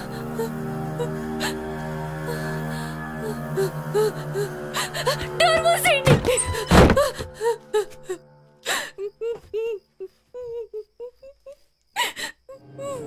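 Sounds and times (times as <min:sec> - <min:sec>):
horror music drone: 0:00.0 - 0:09.2
woman whimpering and gasping: 0:02.2 - 0:05.4, 0:06.2 - 0:13.0.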